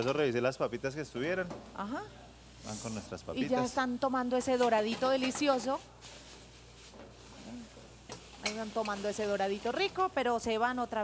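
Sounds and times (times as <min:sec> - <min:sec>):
oil sizzling in deep fryer: 0:00.0 - 0:11.0.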